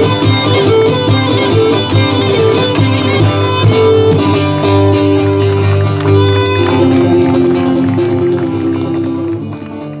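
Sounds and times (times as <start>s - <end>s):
bowed lyra notes: 0.0s - 9.6s
plucked lute accompaniment: 0.0s - 10.0s.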